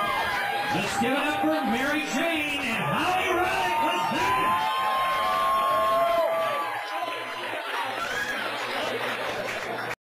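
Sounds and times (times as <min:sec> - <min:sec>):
crowd chatter: 0:00.0 - 0:10.0
crowd cheering: 0:00.0 - 0:10.0
high whoops: 0:03.6 - 0:07.2, 0:08.0 - 0:08.5.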